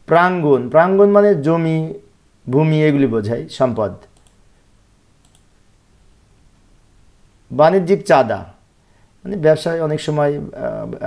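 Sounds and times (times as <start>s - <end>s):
computer mouse clicks: 4.0s - 4.4s, 5.2s - 5.5s.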